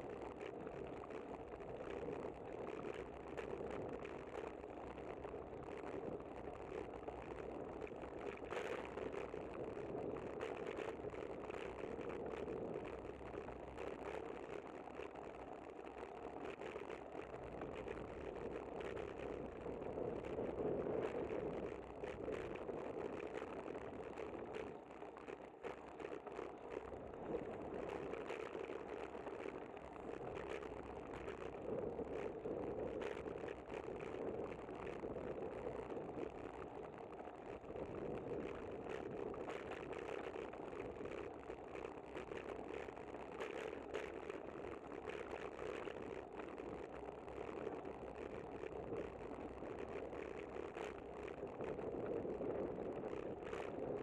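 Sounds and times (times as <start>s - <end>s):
bicycle rattles and clicks: 0.0s - 54.0s
wind and road noise: 0.0s - 54.0s.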